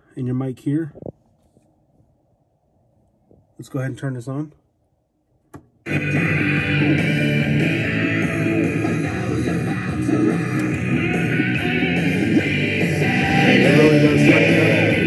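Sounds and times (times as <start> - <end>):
rock music from radio speakers: 5.9 - 15.0.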